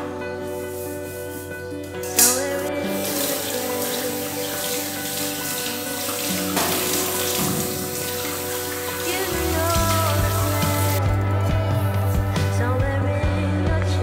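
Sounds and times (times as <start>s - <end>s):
soft background music: 0.0s - 14.0s
tap water running into sink: 2.3s - 11.0s.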